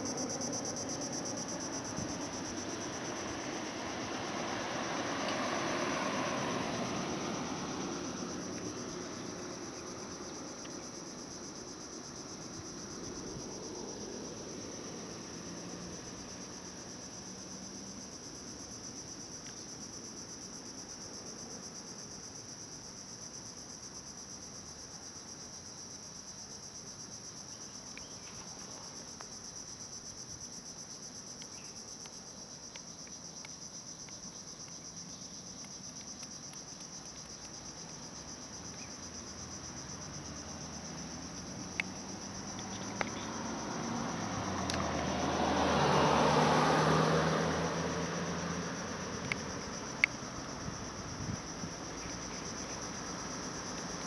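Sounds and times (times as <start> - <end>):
insects droning: 0.0 - 54.0.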